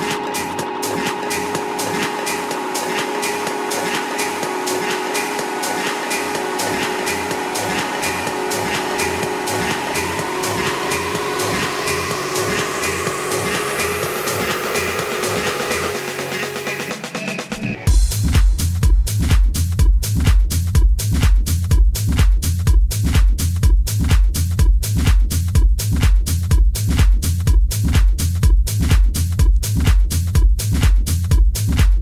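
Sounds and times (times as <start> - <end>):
rising noise sweep: 0.0 - 16.9
sustained synth tones: 0.0 - 16.9
tone gliding upward: 0.0 - 16.9.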